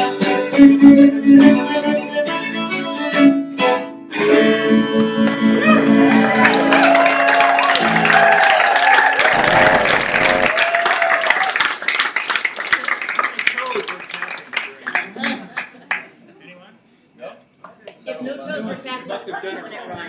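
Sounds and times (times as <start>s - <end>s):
audience applauding: 5.2s - 16.0s.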